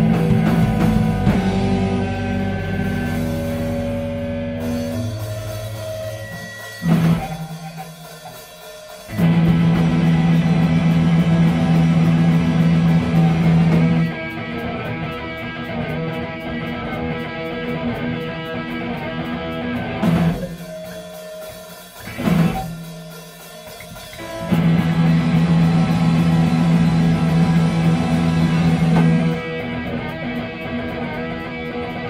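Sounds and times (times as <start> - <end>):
punk band playing: 0.0 - 32.0.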